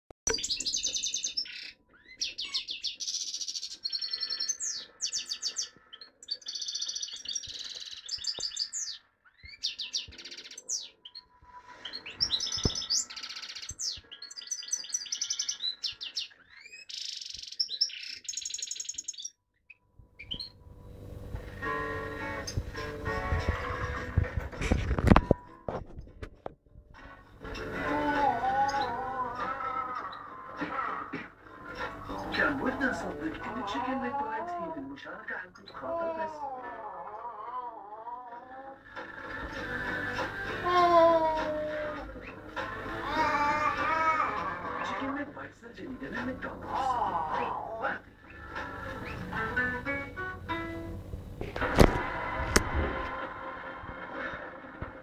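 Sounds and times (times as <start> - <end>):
goldfinch singing: 0.3 - 20.6.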